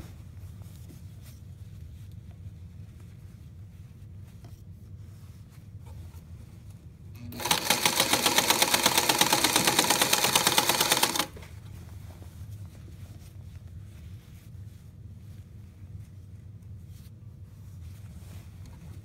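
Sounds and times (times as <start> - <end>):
sewing machine stitching: 7.2 - 11.4.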